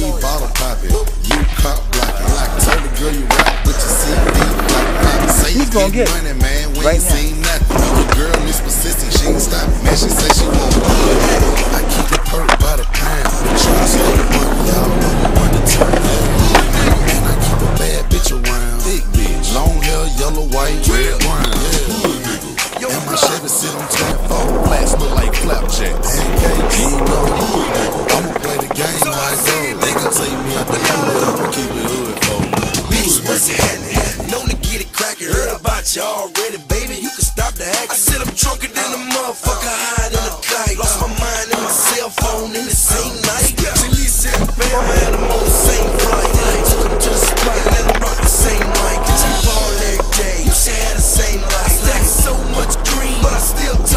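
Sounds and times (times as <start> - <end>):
hip-hop music: 0.0 - 53.9
skateboard rolling on concrete: 0.0 - 53.9.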